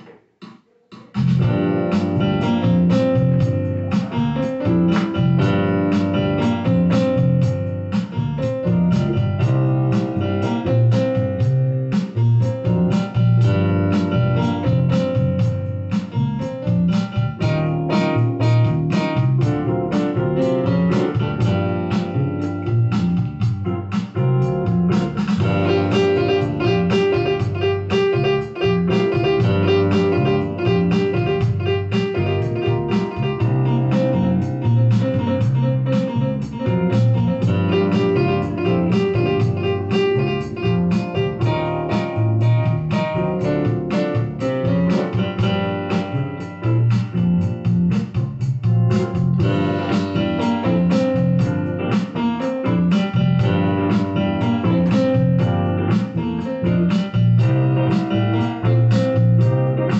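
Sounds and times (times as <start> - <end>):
backing track with beat and bass: 0.0 - 59.9
electronic keyboard playing: 1.4 - 59.9.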